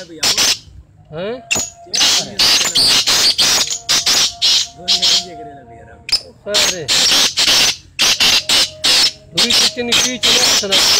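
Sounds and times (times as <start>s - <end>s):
birds harsh rasping calls: 0.0s - 10.9s.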